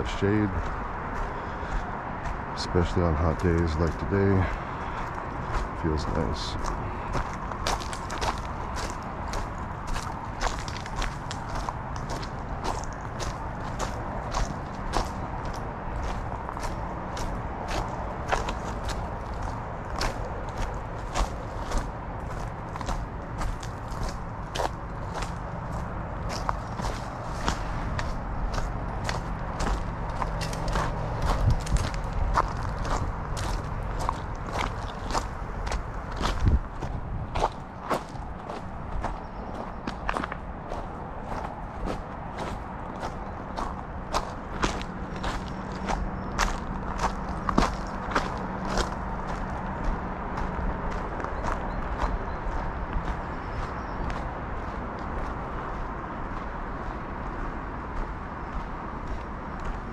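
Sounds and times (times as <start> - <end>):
footsteps on gravel: 0.0 - 59.9.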